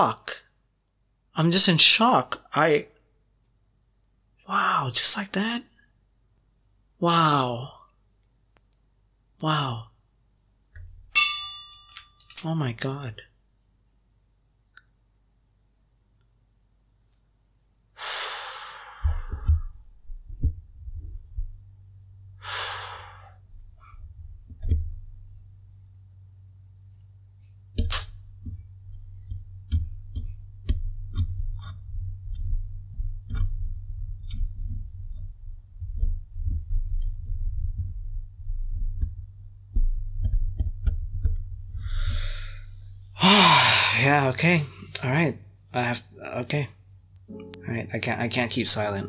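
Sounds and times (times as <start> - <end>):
man exhaling heavily: 18.0 - 19.6, 22.4 - 23.4, 41.8 - 42.6, 43.2 - 44.1
man breathing in softly: 18.0 - 19.8, 41.8 - 43.9
soft low thumps: 19.0 - 22.5, 23.3 - 43.2
man sighing loudly: 43.2 - 44.0.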